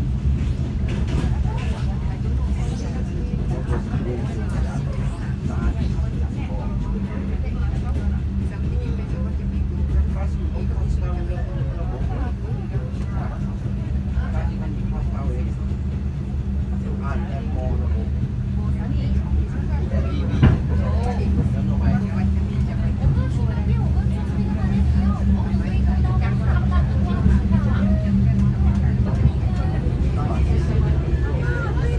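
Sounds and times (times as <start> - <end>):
train hum and rumble: 0.0 - 31.9
people talking: 0.8 - 31.9.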